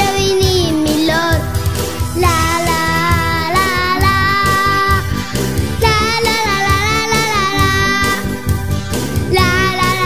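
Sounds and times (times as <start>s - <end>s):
instrumental backing with steady beat: 0.0s - 10.0s.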